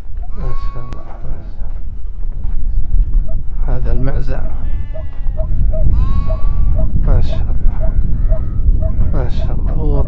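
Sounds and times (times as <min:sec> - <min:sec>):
steady low rumble: 0:00.0 - 0:10.0
goats bleating: 0:00.3 - 0:01.2, 0:04.4 - 0:06.8.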